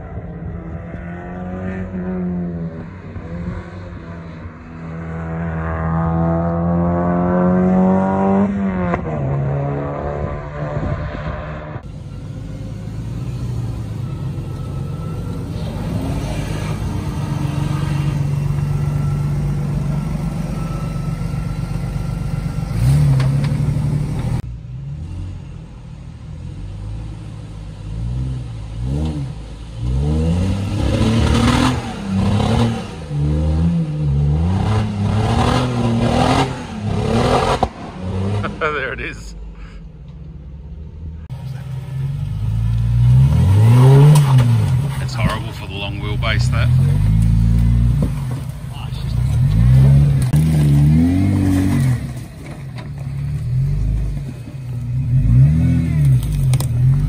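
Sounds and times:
off-road engine revving hard: 4.9s - 11.8s, 15.4s - 18.9s, 22.6s - 25.1s, 28.0s - 39.2s, 41.5s - 48.2s, 48.8s - 52.2s, 55.0s - 57.0s
car engine passing by: 41.2s - 57.0s
clatter: 50.2s - 55.0s, 55.9s - 57.0s.

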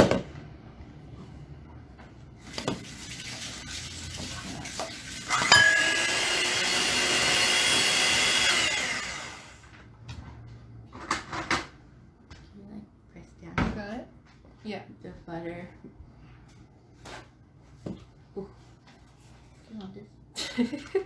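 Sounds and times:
electric hand mixer whining: 4.8s - 9.6s.

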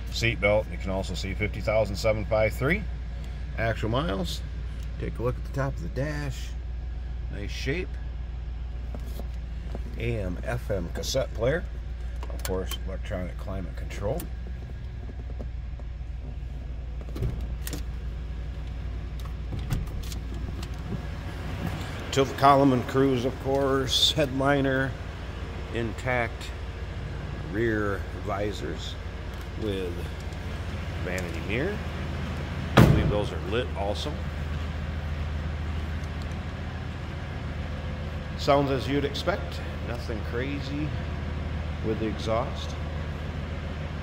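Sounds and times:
car engine idling: 0.0s - 44.0s.

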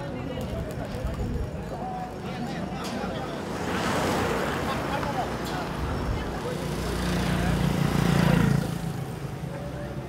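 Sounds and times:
motorcycle passing: 6.2s - 10.0s.

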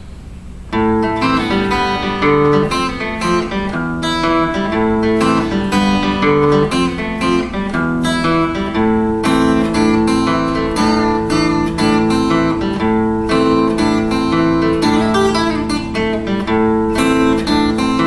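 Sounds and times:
fingerstyle acoustic guitar: 0.7s - 18.0s.

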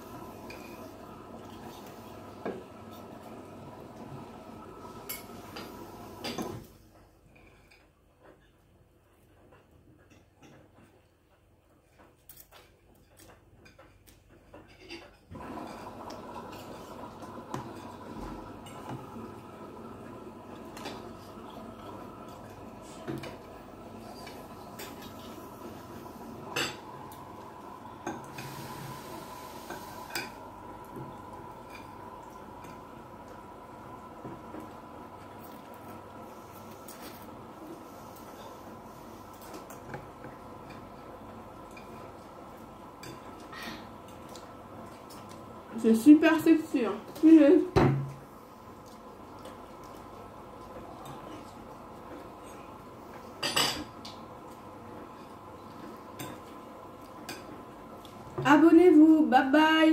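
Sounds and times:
steady hum: 15.4s - 59.9s.

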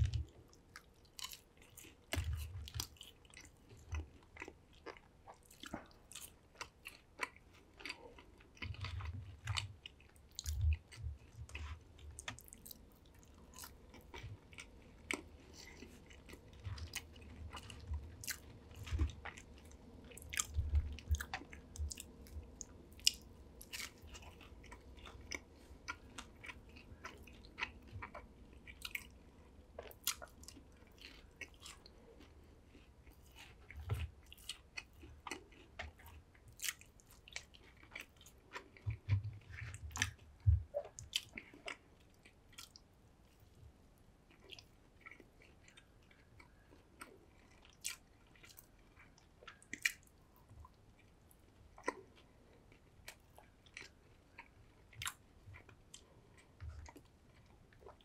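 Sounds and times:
chewing crunchy food: 0.0s - 58.0s.

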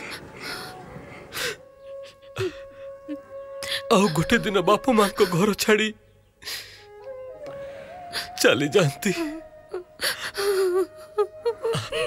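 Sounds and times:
woman crying and sobbing: 0.0s - 5.6s, 8.1s - 12.0s
sharp gasping breath: 6.4s - 8.4s.

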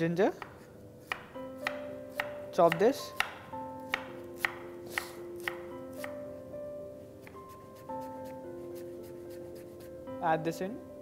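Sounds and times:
background music: 0.0s - 11.0s
knife chopping on wooden board: 0.4s - 6.2s.

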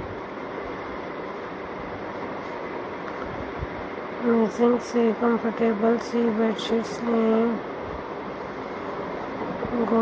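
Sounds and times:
hiss with low rumble: 0.0s - 10.0s.

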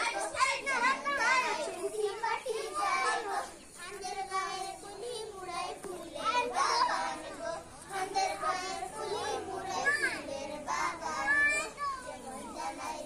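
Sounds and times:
young children talking and calling: 0.0s - 13.0s.

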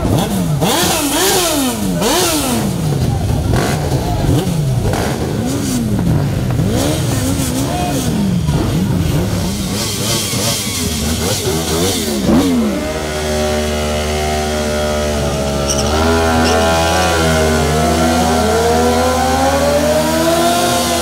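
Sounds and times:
crowd noise: 0.0s - 21.0s
motorcycle engines revving: 0.0s - 21.0s.

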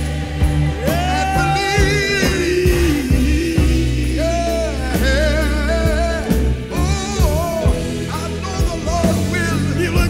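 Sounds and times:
bass line: 0.0s - 10.0s
drum hits: 0.0s - 10.0s
gospel song on vinyl: 0.0s - 10.0s.

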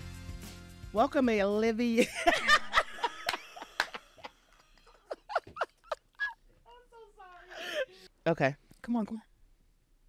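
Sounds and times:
women laughing quietly: 2.0s - 6.6s.

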